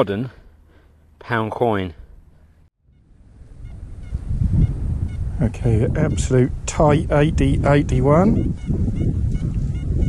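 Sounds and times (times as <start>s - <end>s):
wind on microphone: 2.9s - 10.0s.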